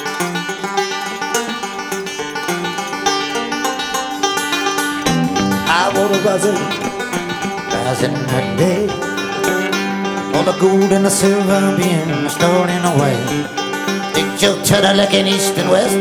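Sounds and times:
banjo picking: 0:00.0 - 0:16.0
bent gliding guitar notes: 0:00.0 - 0:16.0
electric guitar: 0:00.0 - 0:16.0
bass guitar: 0:01.2 - 0:16.0.

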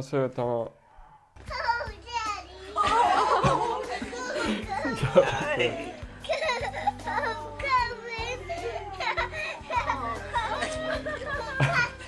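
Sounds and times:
background music: 0:01.4 - 0:12.0
young children's voices: 0:01.4 - 0:12.0.

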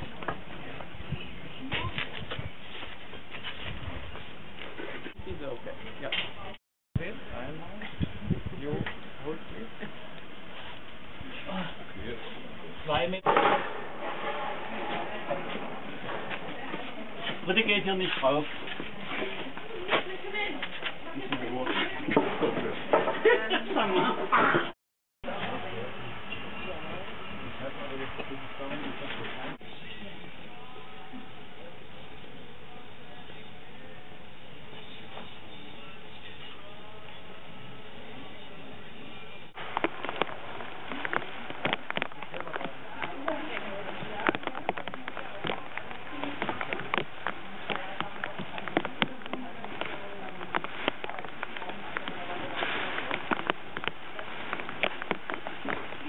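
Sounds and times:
people talking in background: 0:00.0 - 0:56.0.

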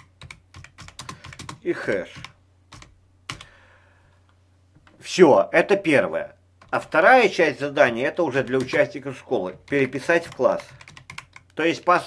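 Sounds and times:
computer keyboard keystroke: 0:00.0 - 0:03.5, 0:08.5 - 0:08.9, 0:09.5 - 0:11.6.

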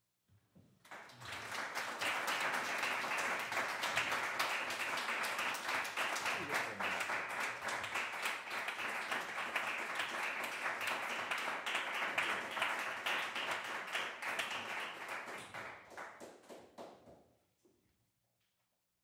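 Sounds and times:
audience applauding: 0:00.8 - 0:16.8.

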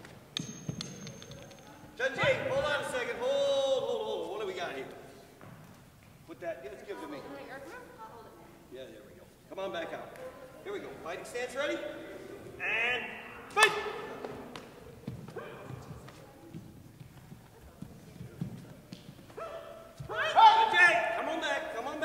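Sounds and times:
people shouting: 0:12.6 - 0:14.2, 0:19.4 - 0:21.5.

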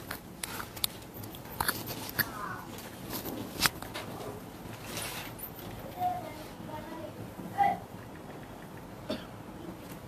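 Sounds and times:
sharp clicks: 0:07.9 - 0:09.0.

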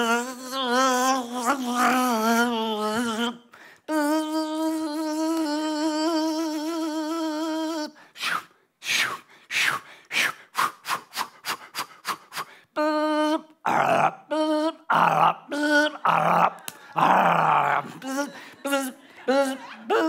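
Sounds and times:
man humming a wobbly note: 0:00.0 - 0:08.0, 0:12.8 - 0:20.0
rasping vocal bursts: 0:00.0 - 0:13.0, 0:13.6 - 0:20.0
man making breathy hisses: 0:07.9 - 0:12.7.

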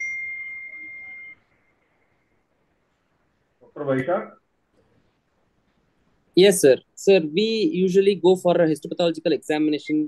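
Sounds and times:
high electronic beep: 0:00.0 - 0:01.8.

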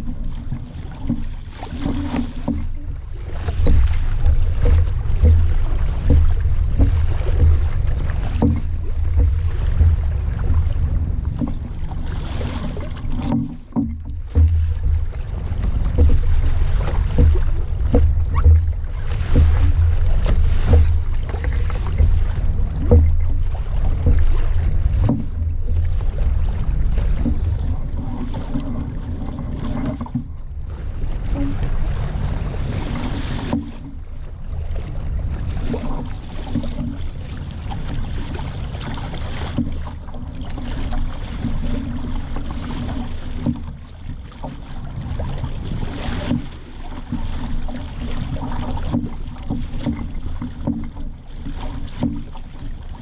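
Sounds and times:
water splashing along hull: 0:00.0 - 0:53.0.

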